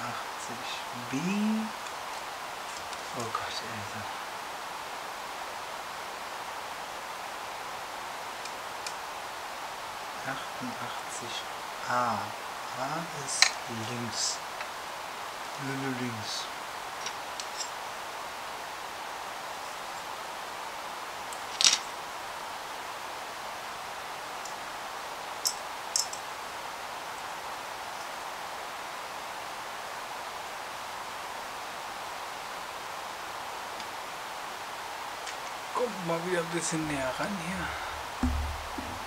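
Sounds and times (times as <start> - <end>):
steady background hiss: 0.0 - 39.0.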